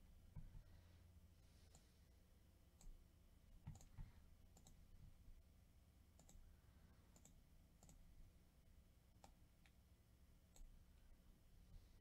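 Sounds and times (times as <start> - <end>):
faint computer mouse clicks: 3.6 - 4.8, 6.2 - 6.5, 7.1 - 8.0, 9.2 - 9.8, 10.5 - 10.8.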